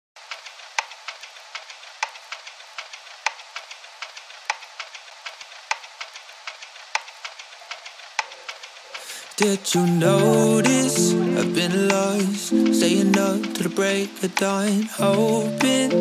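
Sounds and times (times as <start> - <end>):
vinyl crackle and pops: 0.2 - 16.0.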